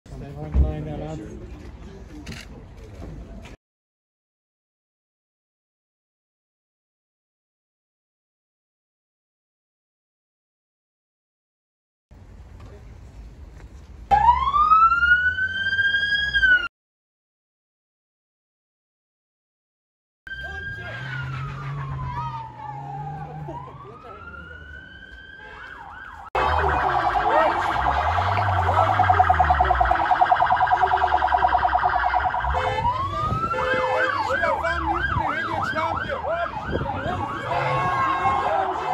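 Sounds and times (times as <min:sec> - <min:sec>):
police siren wailing and yelping: 0:14.1 - 0:16.7, 0:20.3 - 0:38.9.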